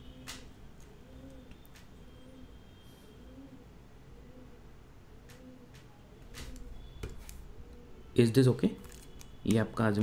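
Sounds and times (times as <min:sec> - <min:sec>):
bird cooing: 0:00.9 - 0:05.8.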